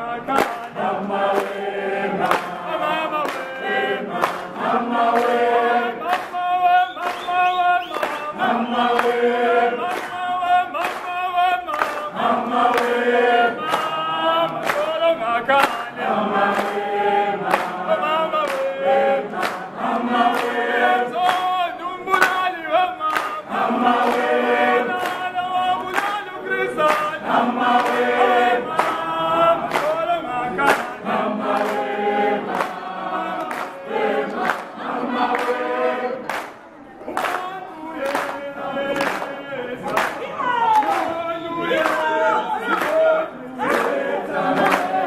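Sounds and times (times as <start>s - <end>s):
choir singing in harmony: 0.0s - 45.0s.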